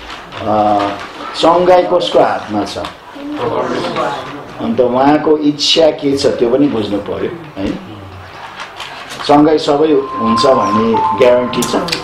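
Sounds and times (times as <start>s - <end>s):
man speaking: 9.3s - 12.0s.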